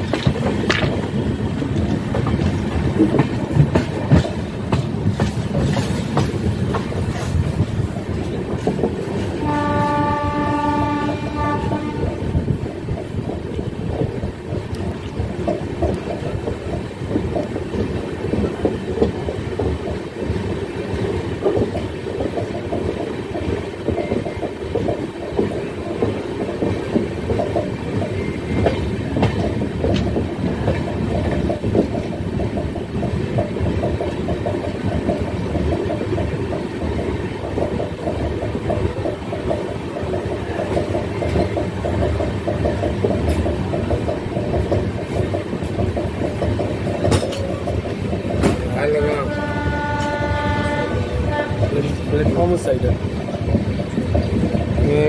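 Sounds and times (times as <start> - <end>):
train wheels clattering on rails: 0.0 - 55.0
train horn: 9.4 - 12.4, 48.8 - 52.0.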